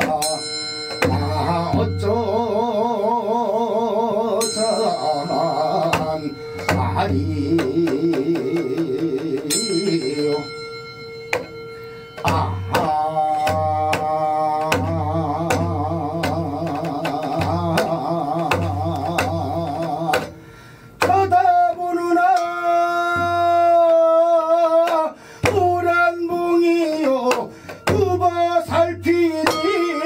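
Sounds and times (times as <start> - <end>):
hourglass drum strokes: 0.0 - 2.5, 4.4 - 23.9
man singing with vibrato: 0.0 - 30.0
brass bowls struck ringing: 0.2 - 2.2, 4.4 - 7.5, 9.5 - 13.9.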